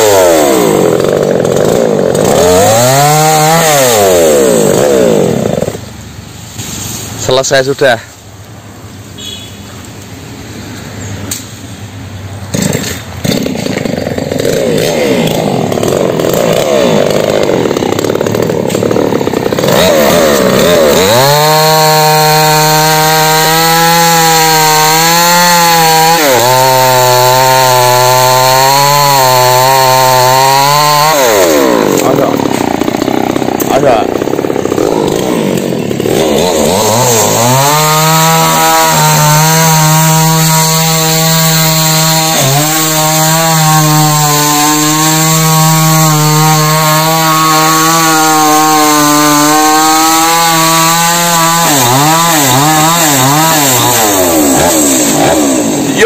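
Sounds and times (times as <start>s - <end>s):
chainsaw cutting tree trunk: 0.0s - 5.9s, 12.5s - 56.0s.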